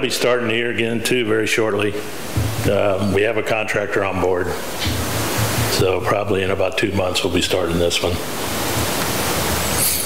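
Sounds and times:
person talking: 0.0s - 8.3s
steady hiss: 0.0s - 10.0s
sharp hiss: 8.0s - 10.0s.

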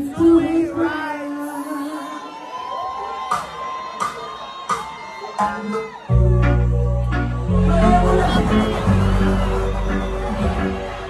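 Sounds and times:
crowd cheering and singing: 0.0s - 11.0s
live band music: 4.0s - 11.0s.

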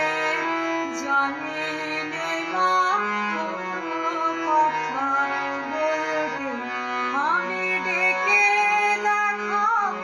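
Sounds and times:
woman singing devotional song: 0.0s - 10.0s.

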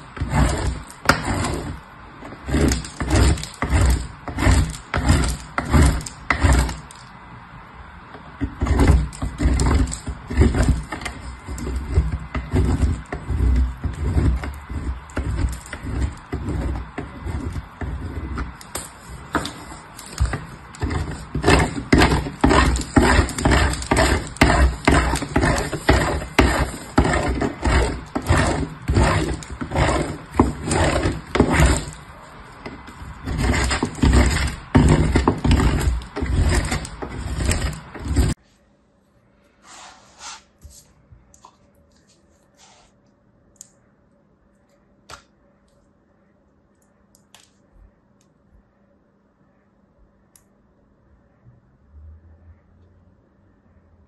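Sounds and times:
soap grated on metal grater: 0.0s - 7.0s, 8.4s - 32.0s, 32.6s - 38.4s.

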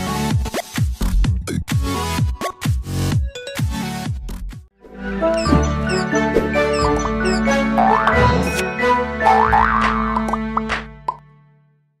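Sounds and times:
held music notes: 4.9s - 9.2s.

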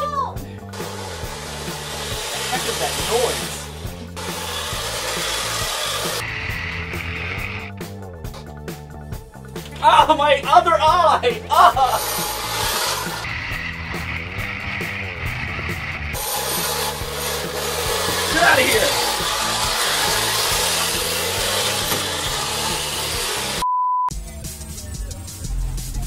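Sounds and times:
background music: 0.0s - 26.0s
loud rasping noise: 0.7s - 7.9s, 10.8s - 23.6s
steady test-pattern beep: 23.6s - 24.1s.

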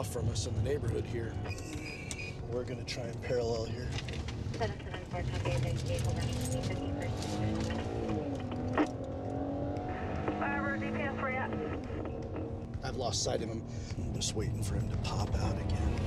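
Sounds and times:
car engine accelerating: 0.0s - 16.0s.

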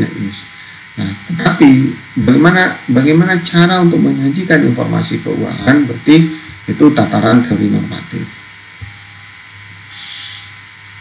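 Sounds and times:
low electrical hum: 0.0s - 11.0s
short soft hiss: 8.3s - 11.0s.

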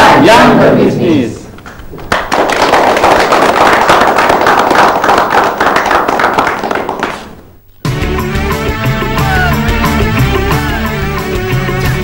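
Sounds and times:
group of people applauding: 1.6s - 7.6s.

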